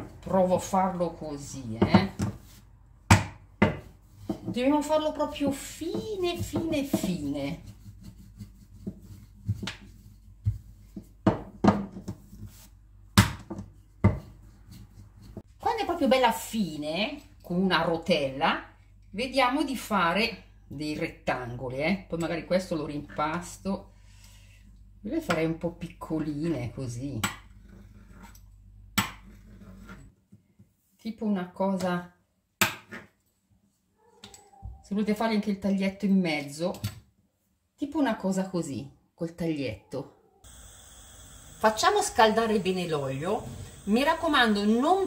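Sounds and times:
rolling pin rubbing on dough: 5.6 - 11.2
cutting wheel rolling through dough: 40.5 - 45.0
steady low hum: 40.5 - 45.0.

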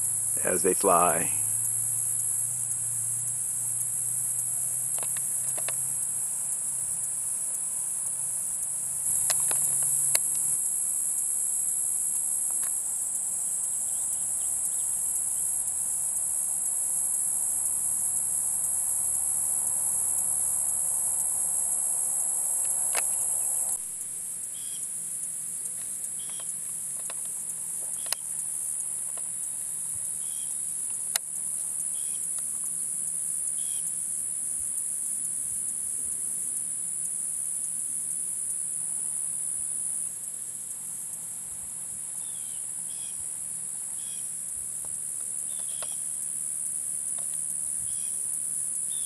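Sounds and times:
insects trilling: 0.0 - 49.0
faint clicks: 5.0 - 5.8, 25.7 - 28.2.

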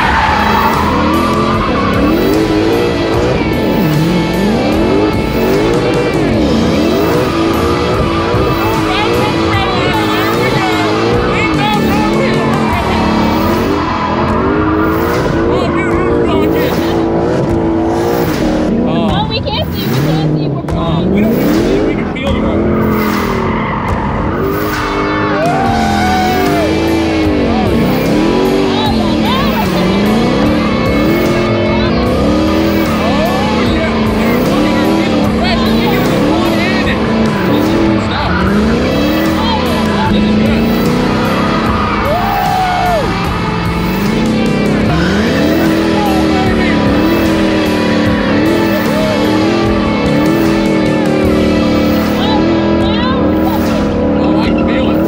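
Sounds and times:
car engine revving: 0.0 - 55.0
tyres squealing and skidding: 0.0 - 55.0.

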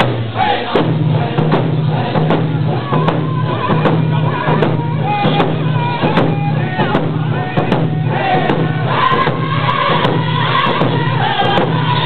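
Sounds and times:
hand drums beating: 0.0 - 12.0
group chanting in unison: 0.1 - 4.7, 6.9 - 12.0.

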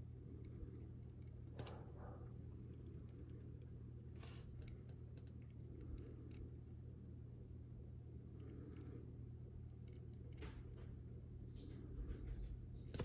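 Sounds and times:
room hum: 0.0 - 13.0.

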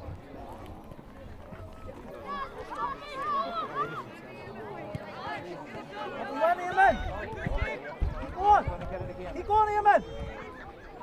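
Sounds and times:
players and spectators calling out: 0.3 - 11.0.

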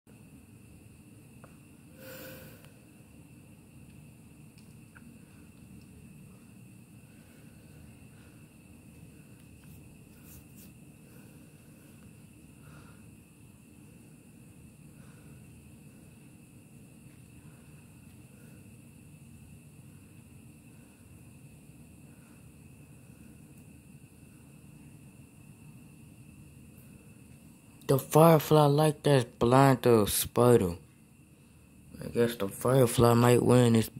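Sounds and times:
faint background hum: 0.1 - 33.9
thin high whine: 0.1 - 33.9.

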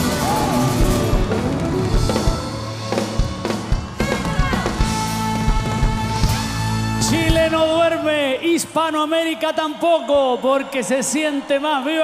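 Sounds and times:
live band playing: 0.0 - 8.7.

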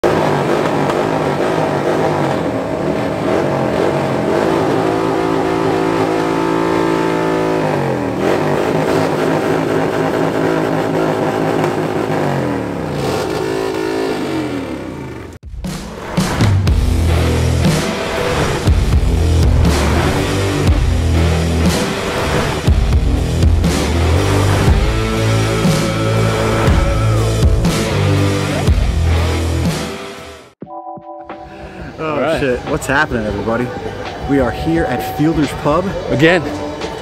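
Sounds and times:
motorcycle engine revving: 0.0 - 30.6
music with heavy bass beat: 15.4 - 30.6.

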